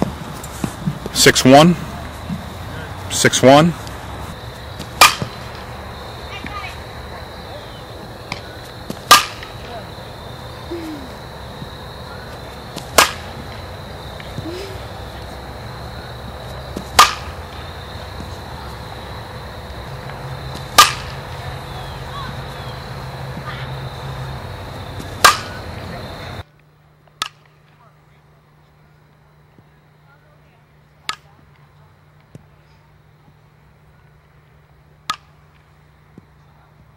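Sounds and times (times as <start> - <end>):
bat striking ball: 4.7 - 6.6, 8.2 - 9.8, 12.7 - 14.4, 16.7 - 18.4, 20.0 - 21.3, 25.0 - 25.6, 35.0 - 35.3.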